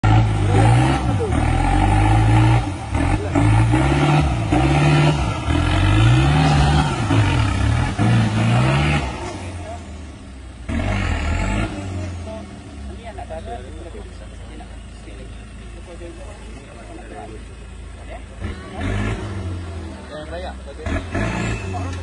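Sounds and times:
diesel engine revving hard: 0.0 - 13.9, 14.6 - 22.0.

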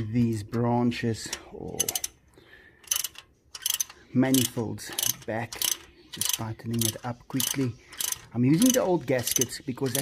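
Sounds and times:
socket ratchet clicking: 1.8 - 2.2, 2.8 - 9.4.

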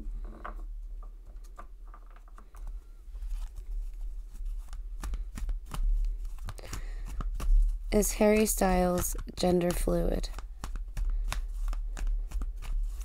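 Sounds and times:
cards being shuffled: 2.3 - 13.0.

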